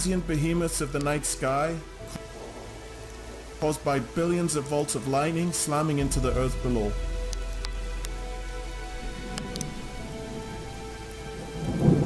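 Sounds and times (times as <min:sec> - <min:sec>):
faint music drone: 0:00.0 - 0:12.0
rain: 0:00.0 - 0:12.0
thunder rumbling: 0:00.0 - 0:12.0
sharp thunder crackles: 0:02.2 - 0:03.8, 0:09.0 - 0:12.0.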